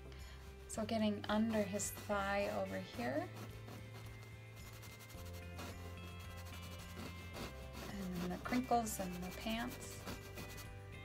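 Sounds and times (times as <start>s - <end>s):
quiet background music: 0.0s - 11.0s
brush scrubbing on canvas: 0.4s - 10.8s.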